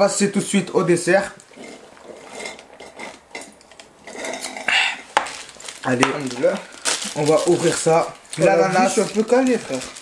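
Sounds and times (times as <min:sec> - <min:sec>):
cups and packaging handling: 0:00.8 - 0:10.0.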